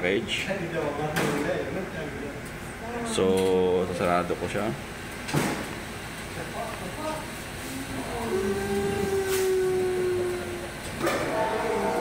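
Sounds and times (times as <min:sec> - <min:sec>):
steady humming tone: 0:01.6 - 0:12.0.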